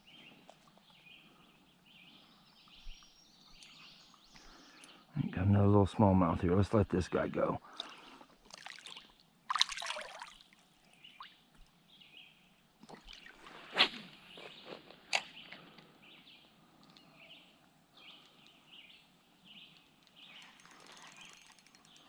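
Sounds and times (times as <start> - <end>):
small birds calling: 0.0 - 5.3, 14.2 - 22.0.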